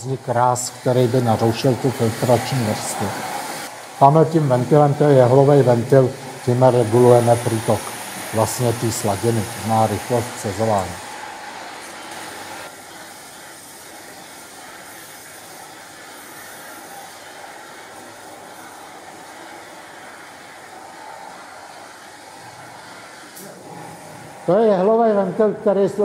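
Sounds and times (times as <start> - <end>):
liquid rushing through pipework: 0.0 - 25.7.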